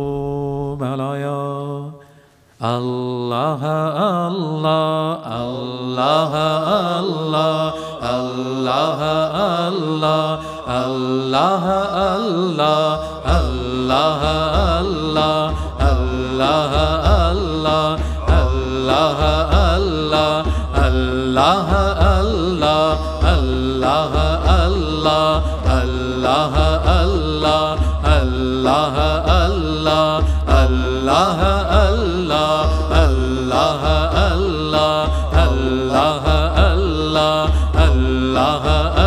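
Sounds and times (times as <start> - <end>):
voices singing a chant: 2.6 - 39.0
pulsing low beat: 13.2 - 39.0.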